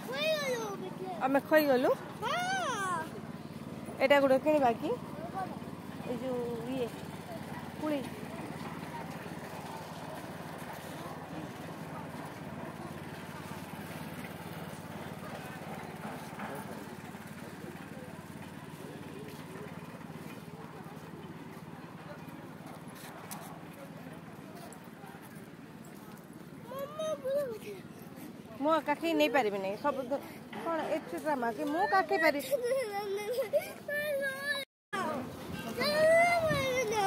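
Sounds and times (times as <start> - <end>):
faint chatter of people: 0.0 - 37.0
crowd murmur: 4.6 - 34.4.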